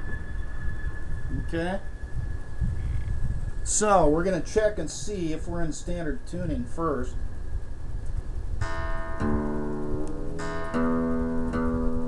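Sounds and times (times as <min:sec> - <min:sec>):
guitar notes ringing: 0:08.6 - 0:12.0.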